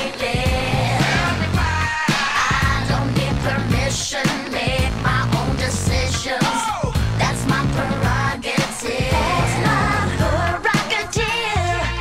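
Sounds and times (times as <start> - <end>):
pop song with female vocal: 0.0 - 12.0.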